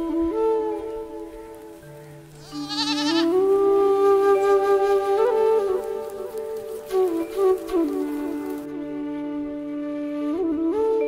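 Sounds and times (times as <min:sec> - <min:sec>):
flute melody: 0:00.0 - 0:11.0
goat bleating: 0:02.4 - 0:03.3.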